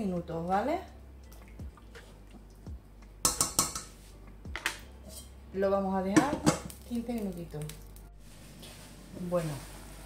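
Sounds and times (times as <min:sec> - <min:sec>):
spatula clinking on metal pot: 0:03.2 - 0:03.9.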